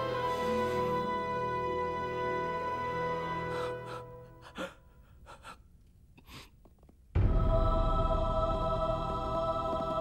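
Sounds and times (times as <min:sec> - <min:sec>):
faint gasping breaths: 0:03.5 - 0:06.6.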